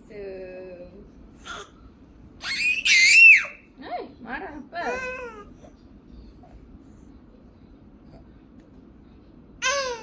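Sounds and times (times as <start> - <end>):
baby squealing shriek: 2.4 - 3.7.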